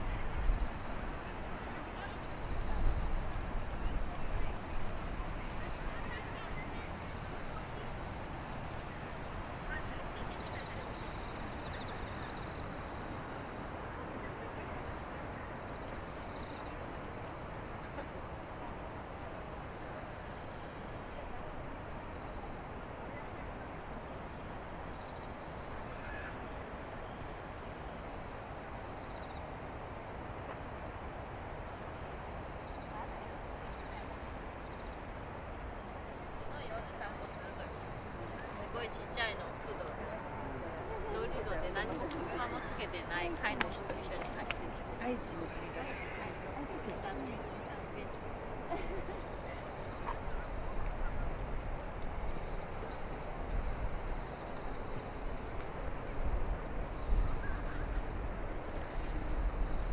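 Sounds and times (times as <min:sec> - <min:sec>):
crickets trilling: 0:00.0 - 0:59.9.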